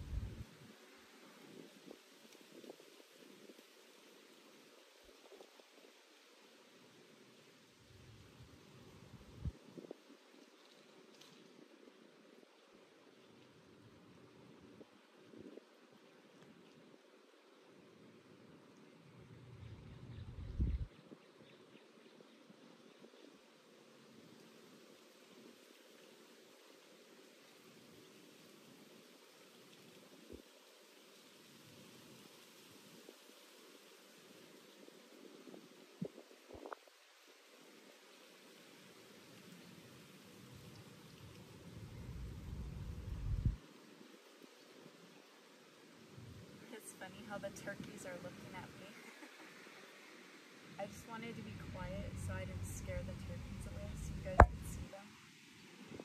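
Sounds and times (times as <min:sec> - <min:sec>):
wind buffeting microphone: 0:00.0 - 0:00.5, 0:19.7 - 0:21.2, 0:42.2 - 0:43.6.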